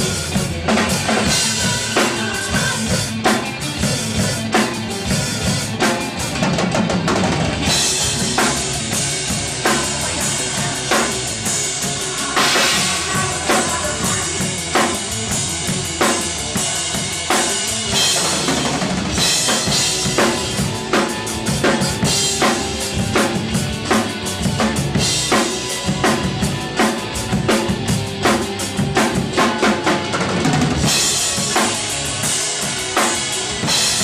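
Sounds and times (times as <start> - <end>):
recorded band track: 0.0 - 34.0
rock drum kit playing: 0.0 - 34.0.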